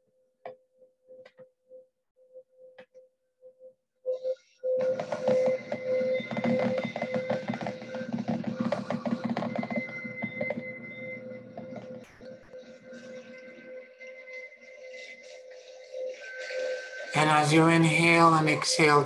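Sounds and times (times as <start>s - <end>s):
slow meditation music: 0.0s - 19.0s.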